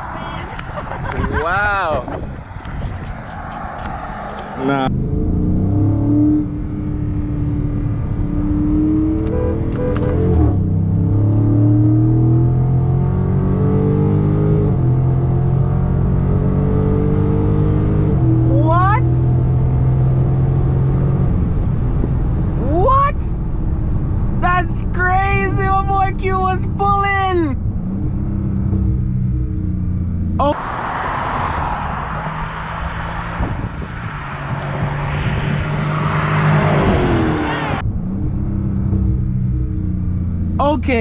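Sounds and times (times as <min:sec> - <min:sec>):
car engine at full throttle: 0:00.0 - 0:41.0.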